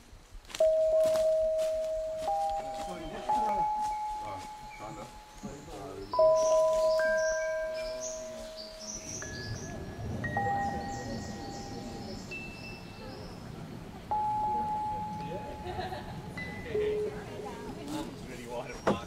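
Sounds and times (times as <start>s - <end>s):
chime tones ringing: 0.6s - 13.2s, 14.1s - 17.7s.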